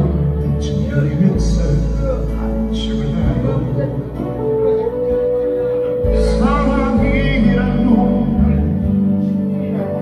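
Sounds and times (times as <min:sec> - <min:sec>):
guitar playing: 0:00.0 - 0:10.0.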